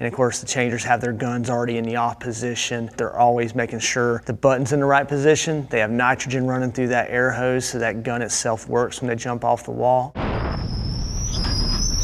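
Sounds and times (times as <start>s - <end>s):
thin high-pitched squeal: 10.2s - 12.0s.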